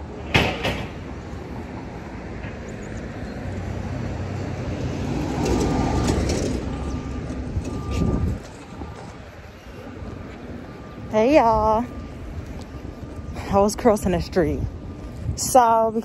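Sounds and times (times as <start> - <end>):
passing vehicle rumble: 0.0 - 15.4.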